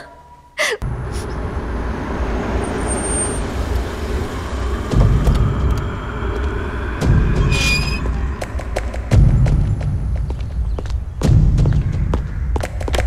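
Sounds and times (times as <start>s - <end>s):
car engine and tyres rumbling: 0.3s - 13.0s
short high squeak: 7.4s - 8.1s.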